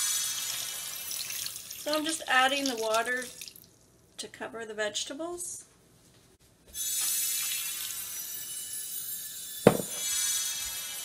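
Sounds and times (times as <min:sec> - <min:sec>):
water pouring into a pot: 0:00.0 - 0:03.8, 0:07.2 - 0:08.4
sharp knock: 0:09.7 - 0:10.0.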